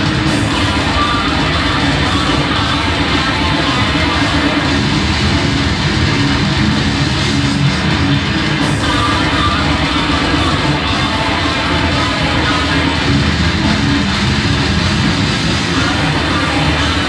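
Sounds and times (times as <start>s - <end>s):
distorted electric guitars: 0.0s - 17.0s
fast dense drumming: 0.0s - 17.0s.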